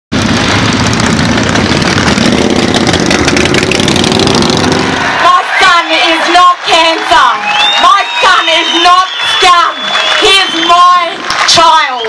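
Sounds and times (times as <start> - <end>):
motorcycles riding past: 0.2 - 5.3.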